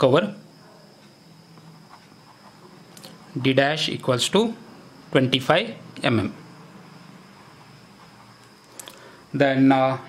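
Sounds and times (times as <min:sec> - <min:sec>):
high-pitched whine: 0:00.0 - 0:10.0
low room hum: 0:00.0 - 0:10.0
pen scratching on paper: 0:07.4 - 0:08.5.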